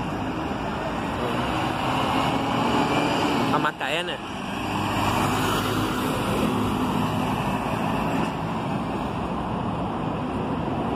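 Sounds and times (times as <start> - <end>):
bus driving past: 0.0 - 10.9
road noise: 0.0 - 10.9.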